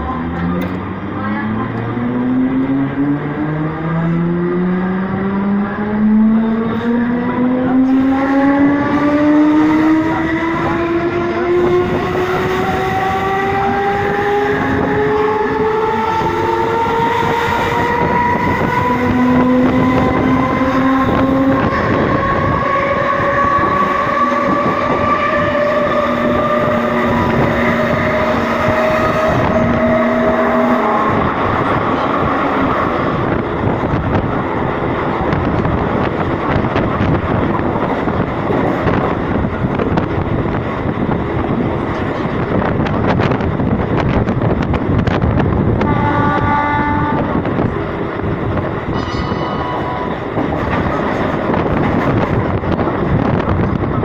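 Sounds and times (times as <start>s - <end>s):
wheels rumbling on rail: 0.0s - 54.0s.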